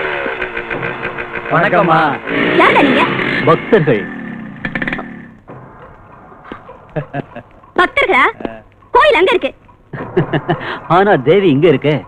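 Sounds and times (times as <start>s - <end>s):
motor engine falling in pitch: 0.0s - 7.1s.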